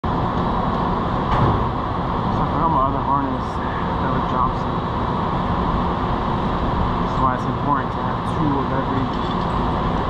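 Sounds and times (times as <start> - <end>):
construction machinery engine drone: 0.0 - 10.0.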